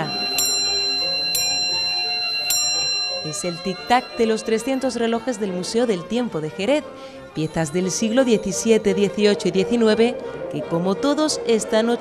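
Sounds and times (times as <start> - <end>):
clock bell striking: 0.0 - 5.2.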